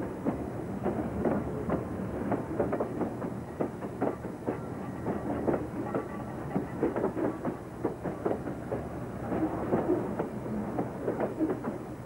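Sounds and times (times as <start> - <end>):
steel wheels clicking on rails: 0.0 - 12.0.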